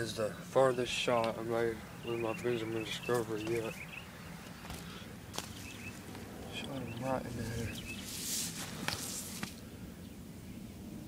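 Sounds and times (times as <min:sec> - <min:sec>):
feathers rustling: 0:02.9 - 0:09.6.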